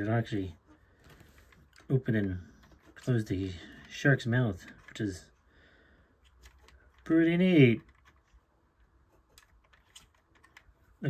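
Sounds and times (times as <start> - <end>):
faint plastic clicks: 0.6 - 11.0.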